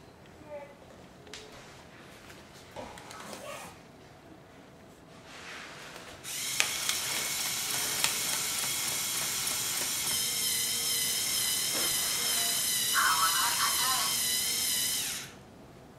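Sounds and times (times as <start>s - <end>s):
robot motors whirring: 6.3s - 15.4s.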